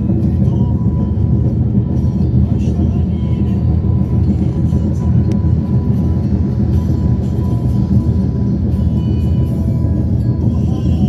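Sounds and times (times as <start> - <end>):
car road rumble: 0.0 - 11.0
music playing: 0.0 - 11.0.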